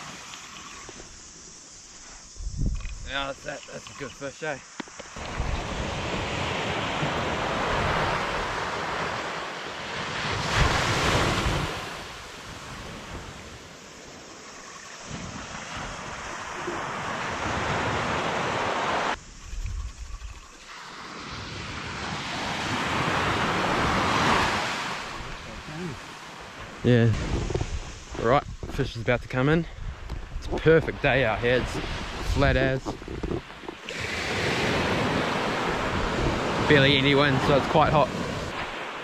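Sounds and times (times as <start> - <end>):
wind rumbling on microphone: 2.2 - 4.2, 5.2 - 9.3, 15.0 - 20.7, 26.6 - 38.9
surf breaking on beach: 5.2 - 14.3, 14.9 - 19.2, 20.7 - 28.6, 33.5 - 39.0.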